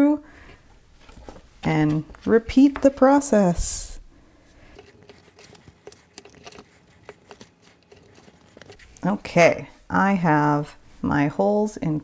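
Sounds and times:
hands handling paper: 0:01.0 - 0:03.8, 0:04.5 - 0:09.2.

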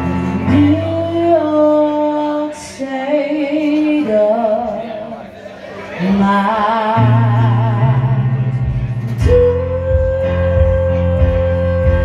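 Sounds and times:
woman singing with vibrato: 0:00.0 - 0:05.2, 0:05.9 - 0:12.0
grand piano chords: 0:00.0 - 0:12.0.

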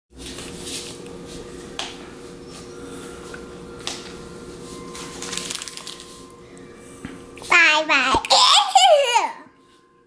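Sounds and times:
steady low hum: 0:00.2 - 0:10.0.

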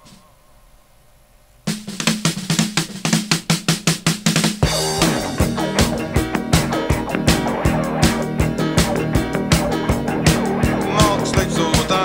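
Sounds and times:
drum kit fast strikes: 0:01.7 - 0:12.0
rock band with bass: 0:04.6 - 0:12.0.

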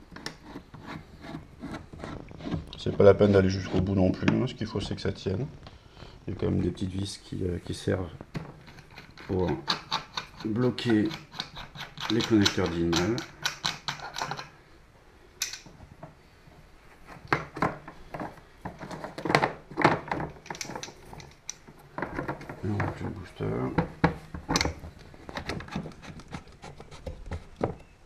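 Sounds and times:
metal fittings clicking and knocking: 0:08.3 - 0:14.5, 0:15.4 - 0:16.1, 0:17.3 - 0:23.1.

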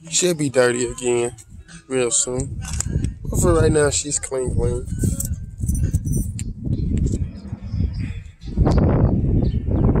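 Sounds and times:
wind buffeting microphone: 0:01.4 - 0:10.0.

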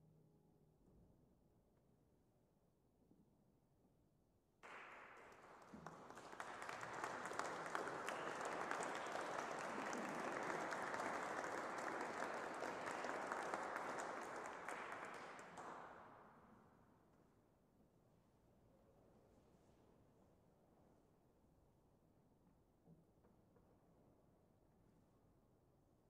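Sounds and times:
audience applauding: 0:04.6 - 0:16.1.

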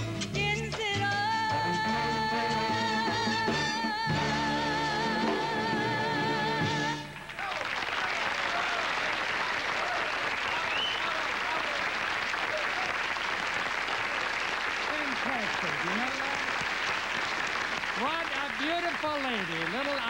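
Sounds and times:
audience applauding: 0:06.9 - 0:20.0.

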